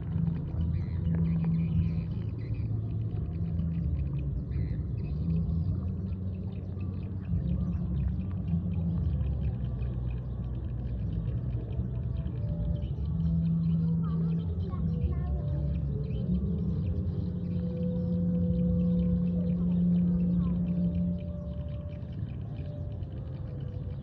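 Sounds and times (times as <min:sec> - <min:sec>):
low rumble: 0:00.0 - 0:24.0.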